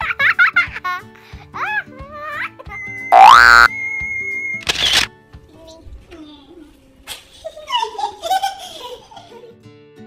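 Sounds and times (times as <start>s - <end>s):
cartoon upward pitch sweep: 3.2s - 3.7s
background music with high note: 3.2s - 3.8s.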